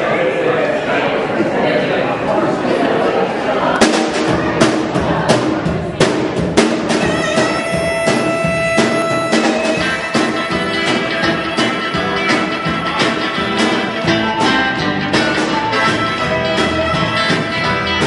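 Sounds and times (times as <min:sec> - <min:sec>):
drum beat: 0:03.8 - 0:18.0
harmonica playing held notes: 0:07.0 - 0:18.0.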